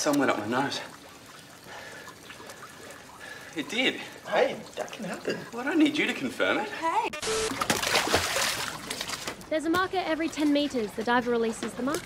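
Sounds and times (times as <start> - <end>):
light splashy ticks: 0.0 - 5.0
water trickling and sloshing: 0.0 - 12.0.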